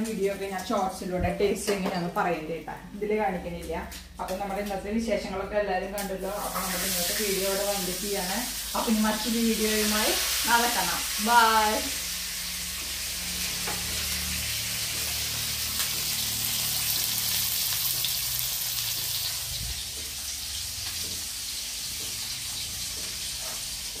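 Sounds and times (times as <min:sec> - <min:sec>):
fish sizzling in oil: 0:06.2 - 0:24.0.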